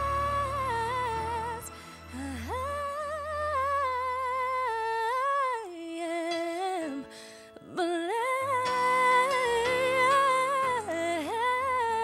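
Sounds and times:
woman singing with vibrato: 0.0 - 12.0
low accompaniment: 8.2 - 12.0.

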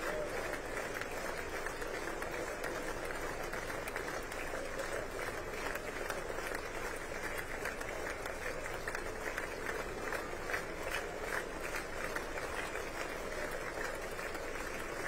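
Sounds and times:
crowd applause: 0.0 - 15.0
murmur of voices: 0.0 - 15.0.

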